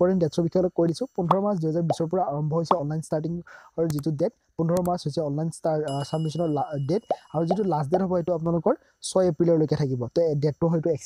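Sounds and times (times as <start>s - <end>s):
man talking: 0.0s - 11.0s
bell chime ringing: 5.9s - 8.0s.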